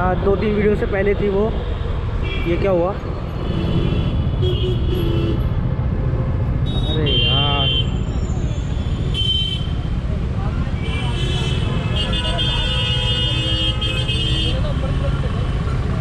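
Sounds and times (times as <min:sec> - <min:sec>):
motorcycle engine and road rumble: 0:00.0 - 0:16.0.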